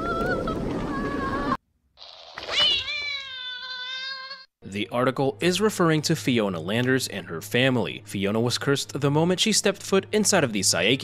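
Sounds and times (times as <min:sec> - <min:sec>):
cat-like yowl: 0:02.0 - 0:04.5.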